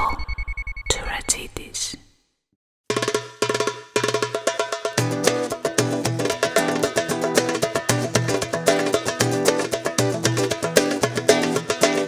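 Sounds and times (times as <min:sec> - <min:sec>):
band music with percussion: 0:02.9 - 0:12.0.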